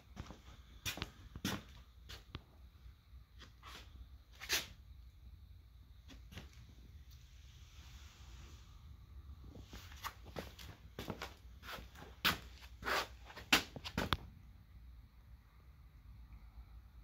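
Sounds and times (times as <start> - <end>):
footsteps scuffing on concrete: 0.2 - 2.4, 9.6 - 14.2.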